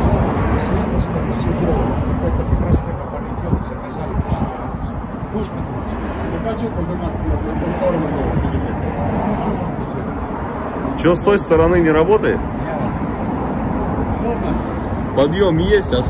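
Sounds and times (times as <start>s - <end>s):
city road traffic rumble: 0.0s - 16.0s.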